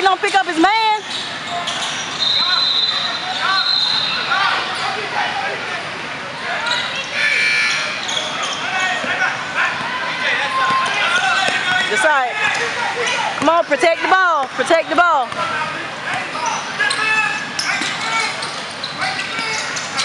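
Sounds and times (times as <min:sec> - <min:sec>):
shouts and chatter: 0:00.0 - 0:20.0
high squeal: 0:01.0 - 0:05.0, 0:06.6 - 0:09.0.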